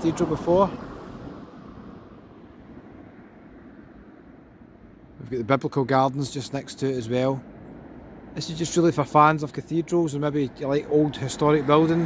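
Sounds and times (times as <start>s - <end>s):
low outdoor background rumble: 0.0s - 12.0s.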